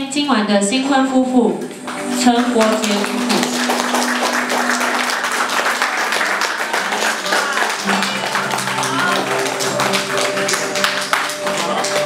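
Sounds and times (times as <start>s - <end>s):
music with sustained notes: 1.1s - 12.0s
crowd clapping and cheering: 1.8s - 12.0s.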